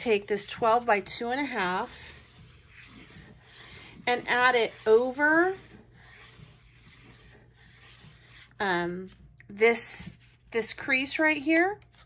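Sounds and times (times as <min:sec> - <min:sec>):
tool rubbing on paper: 0:00.0 - 0:10.5.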